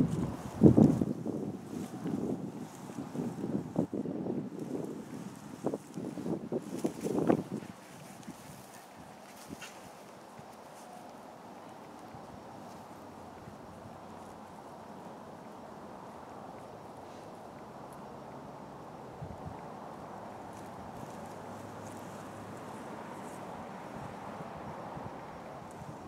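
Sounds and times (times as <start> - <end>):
wind buffeting microphone: 0.0 - 10.8, 19.1 - 26.0.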